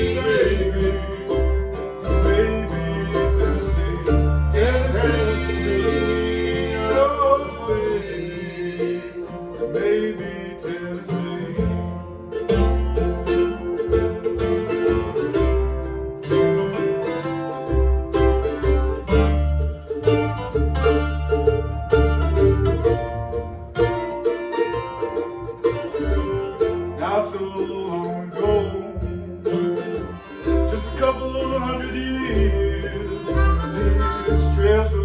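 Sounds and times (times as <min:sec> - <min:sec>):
picked mandolin: 0:00.0 - 0:35.0
strummed acoustic guitar: 0:00.0 - 0:35.0
upright bass line: 0:00.0 - 0:35.0.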